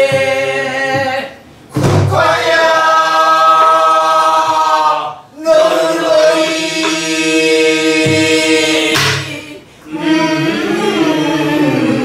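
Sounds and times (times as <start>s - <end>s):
barrel drum strokes: 7.9s - 9.3s.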